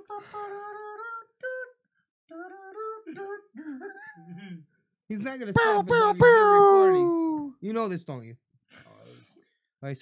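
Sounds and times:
man singing wordless tune: 5.5s - 7.5s.

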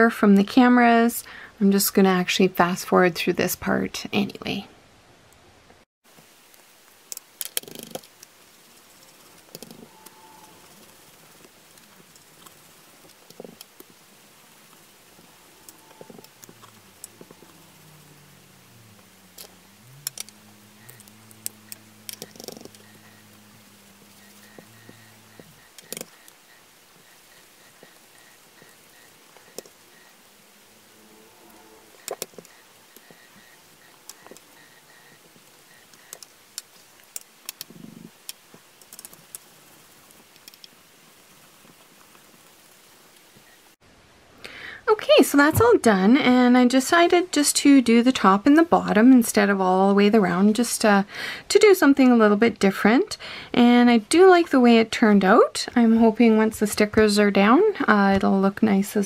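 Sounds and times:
low hum sliding in pitch: 14.9s - 32.1s.

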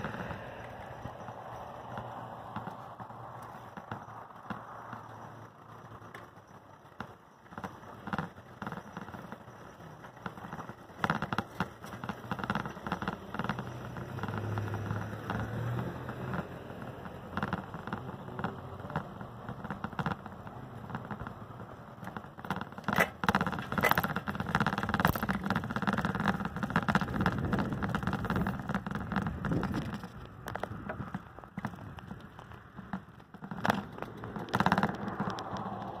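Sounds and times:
wheels rolling over asphalt: 0.0s - 36.0s.

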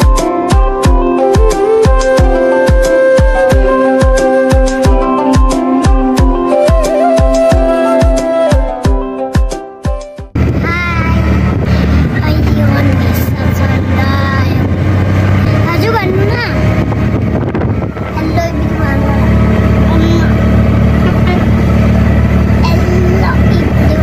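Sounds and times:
vehicle engine and road noise: 10.3s - 24.0s.

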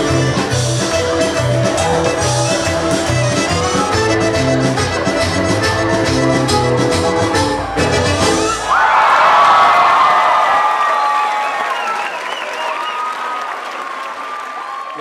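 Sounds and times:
live band with accordion: 0.0s - 8.6s
crowd applause: 0.7s - 15.0s
crowd cheering and whistling: 0.9s - 5.4s, 6.1s - 15.0s.

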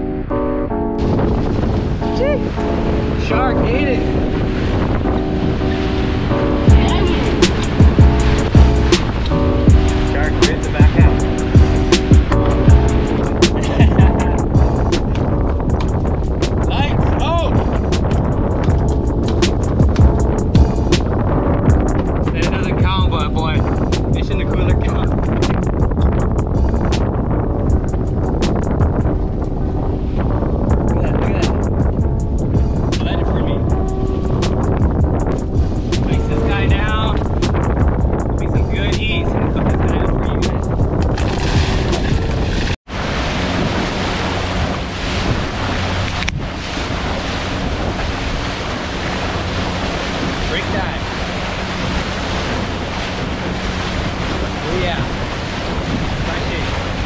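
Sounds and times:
outboard motor drone: 0.0s - 22.8s, 41.0s - 57.0s
wind buffeting microphone: 0.0s - 57.0s
music with steady beat: 6.7s - 16.7s, 17.5s - 23.0s, 30.7s - 38.4s.

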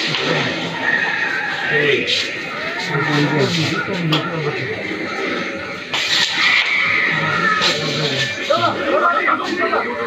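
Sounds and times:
men talking: 1.5s - 5.8s, 7.0s - 10.0s
whinny-like voice: 6.4s - 9.0s.

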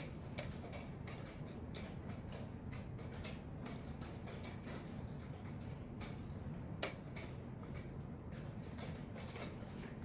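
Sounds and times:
light ticking clicks: 0.0s - 9.6s
low room hum: 0.0s - 10.0s.

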